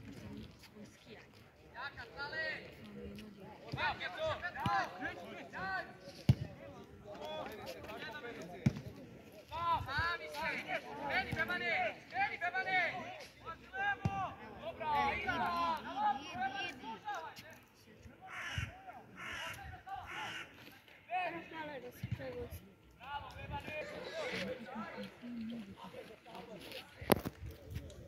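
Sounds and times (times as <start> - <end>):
people calling out and talking: 0.0 - 28.0.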